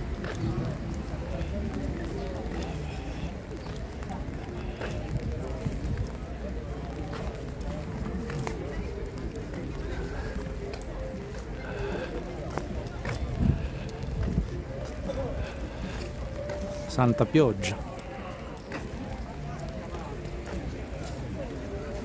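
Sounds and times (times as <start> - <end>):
footsteps on wet pavement: 0.0 - 22.0
murmuring voices: 0.0 - 22.0
low microphone rumble: 12.2 - 16.2.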